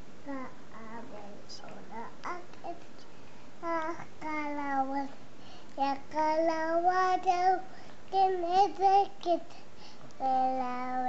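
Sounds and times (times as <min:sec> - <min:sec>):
child singing: 0:01.9 - 0:02.8, 0:03.6 - 0:05.2, 0:05.8 - 0:09.5, 0:10.2 - 0:11.0.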